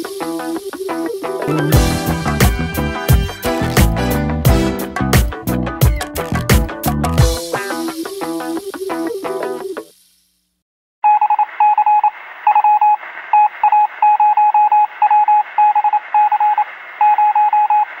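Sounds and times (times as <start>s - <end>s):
background music: 0.0s - 9.6s
faint hiss: 7.8s - 10.6s.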